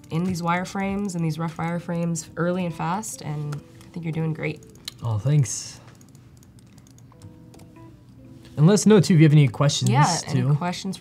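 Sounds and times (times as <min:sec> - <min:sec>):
laptop keyboard typing: 0:00.0 - 0:02.8, 0:03.4 - 0:07.8
faint music tones: 0:00.0 - 0:11.0.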